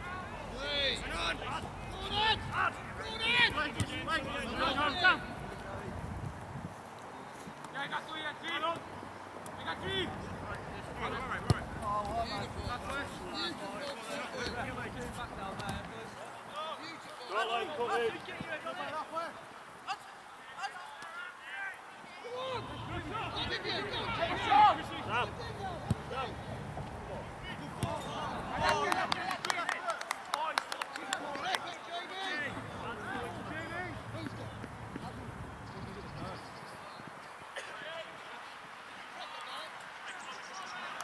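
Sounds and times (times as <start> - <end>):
footballers shouting: 0.0 - 5.8, 9.6 - 35.3.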